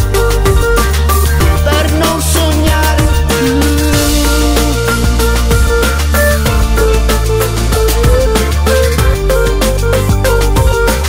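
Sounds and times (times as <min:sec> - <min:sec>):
electronic pop instrumental: 0:00.0 - 0:11.0.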